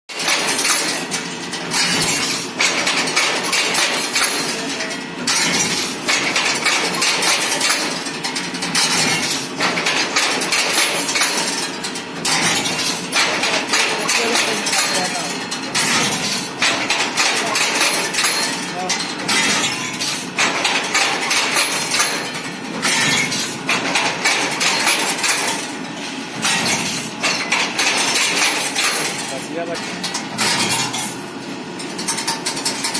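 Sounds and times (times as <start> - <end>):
ring-making machine bending steel: 0.1 - 32.9.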